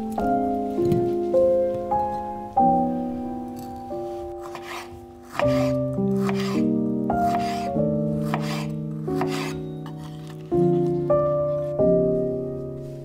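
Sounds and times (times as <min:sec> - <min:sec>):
piano background music: 0:00.0 - 0:13.0
knife slicing onto cutting board: 0:04.4 - 0:06.6, 0:07.3 - 0:10.2.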